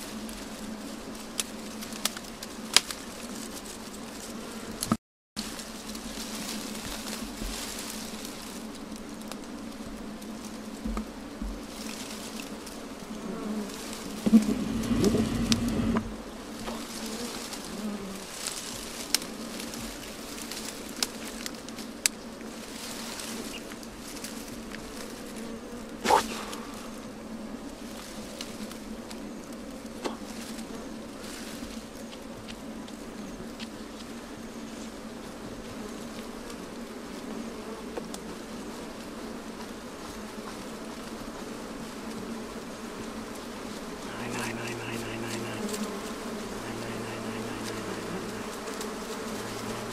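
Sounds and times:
bees buzzing: 0:09.5 - 0:18.4, 0:24.9 - 0:31.2, 0:41.5 - 0:49.9
smoke being blown: 0:14.2 - 0:16.2, 0:26.0 - 0:27.1.

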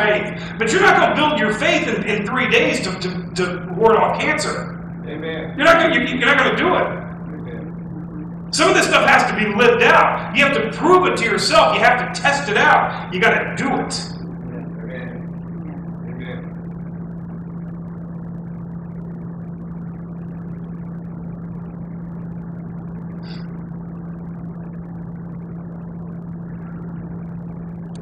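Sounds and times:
low hum with faint hiss: 0:00.0 - 0:28.0.

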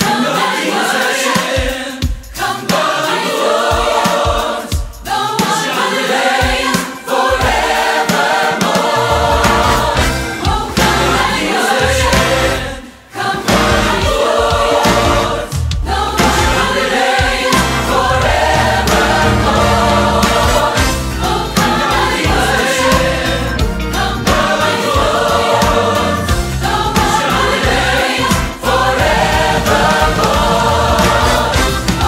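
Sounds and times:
choir singing: 0:00.0 - 0:32.0
orchestral accompaniment: 0:07.1 - 0:32.0.

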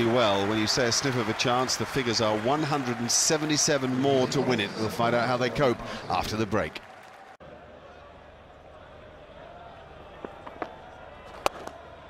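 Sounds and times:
crowd ambience: 0:00.0 - 0:06.8, 0:07.4 - 0:12.0
bat hitting ball: 0:10.2 - 0:11.8.

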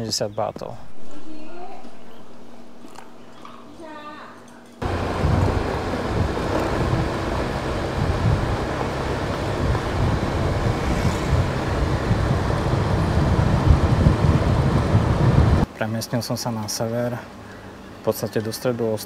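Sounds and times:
hiss of travel: 0:04.8 - 0:15.7
wind buffeting microphone: 0:04.8 - 0:15.7.

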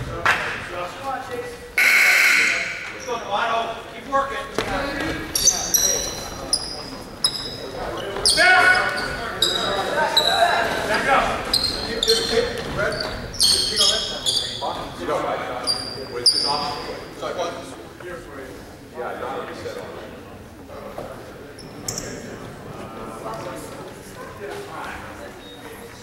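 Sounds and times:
people calling out: 0:01.8 - 0:03.1
sneakers squeaking: 0:04.5 - 0:15.0, 0:15.6 - 0:17.1, 0:21.5 - 0:22.5.

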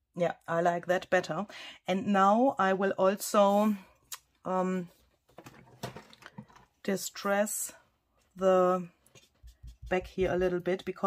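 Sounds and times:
person speaking: 0:08.4 - 0:11.0.

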